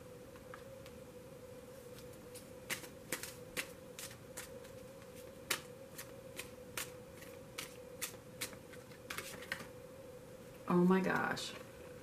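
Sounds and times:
faint steady hum: 0.0s - 12.0s
cards being shuffled: 1.9s - 9.7s.

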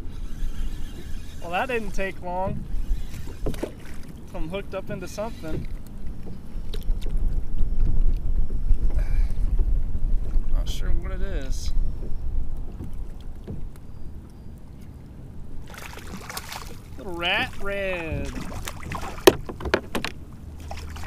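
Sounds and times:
wind buffeting microphone: 0.0s - 4.3s, 5.0s - 14.2s, 15.4s - 20.3s
water slapping kayak hull: 0.0s - 10.8s, 11.8s - 21.0s.

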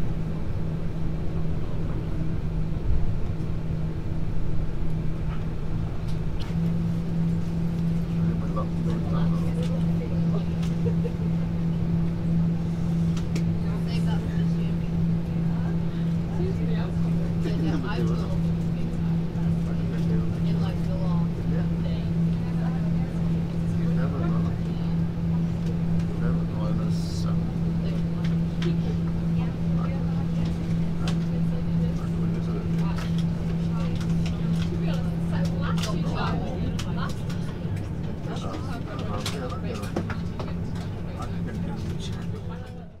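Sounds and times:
aircraft cabin hum: 0.0s - 43.0s
faint passenger talk: 0.3s - 4.0s, 6.0s - 43.0s.

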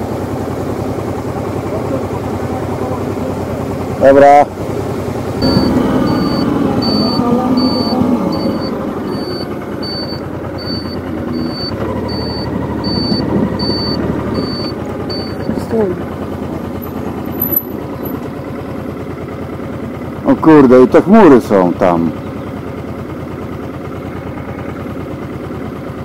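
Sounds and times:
motorcycle engine running: 0.0s - 26.0s
high electronic beep: 5.4s - 15.5s.

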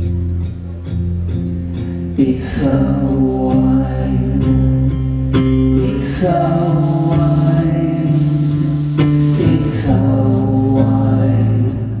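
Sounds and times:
person singing: 2.2s - 4.9s, 5.8s - 12.0s.

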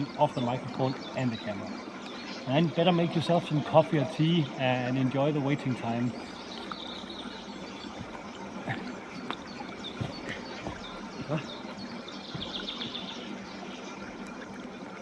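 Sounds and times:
water trickling over stones: 0.0s - 15.0s
soft knocks and footfalls: 7.9s - 8.3s, 9.2s - 11.4s, 12.3s - 13.0s.

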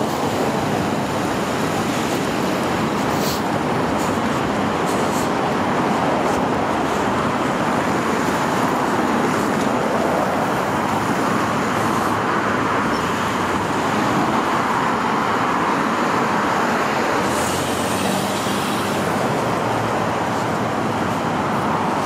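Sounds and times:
freeway traffic rushing: 0.0s - 22.0s.

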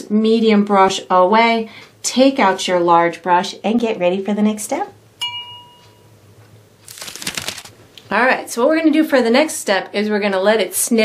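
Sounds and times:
brush striking hard object ding: 5.2s - 6.1s.

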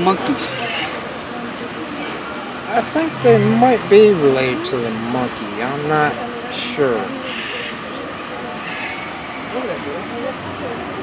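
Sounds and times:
faint distant voices: 0.0s - 11.0s
steady background noise: 0.0s - 11.0s.

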